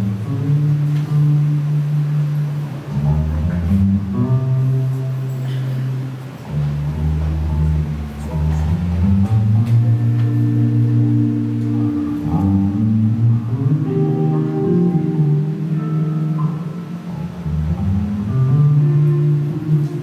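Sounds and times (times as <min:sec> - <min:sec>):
electric bass notes: 0:00.0 - 0:20.0
jazz band playing: 0:00.0 - 0:20.0.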